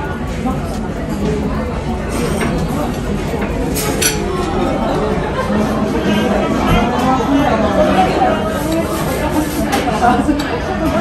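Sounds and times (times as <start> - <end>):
cafe chatter: 0.0 - 11.0
metal fork clinking on ceramic dish: 3.8 - 4.3.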